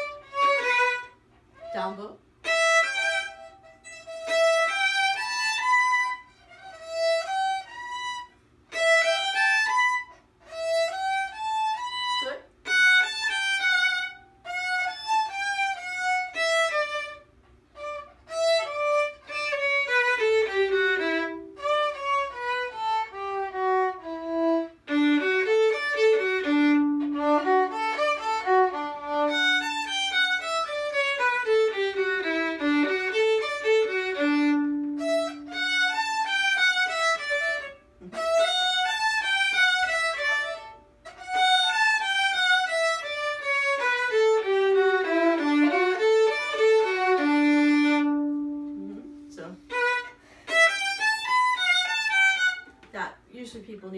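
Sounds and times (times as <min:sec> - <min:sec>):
two violins playing: 0:00.0 - 0:52.7.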